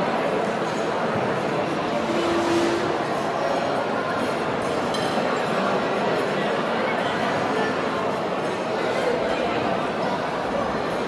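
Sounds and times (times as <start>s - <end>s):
dense crowd chatter: 0.0s - 11.0s.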